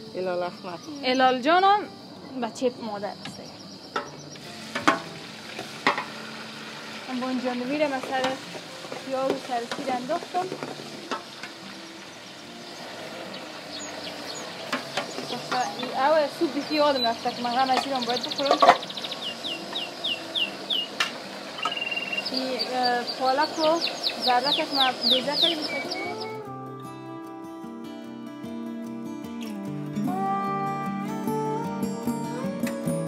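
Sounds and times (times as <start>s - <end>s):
food sizzling in pot: 3.7s - 26.4s
small bird chirping: 12.1s - 21.0s, 21.6s - 26.4s.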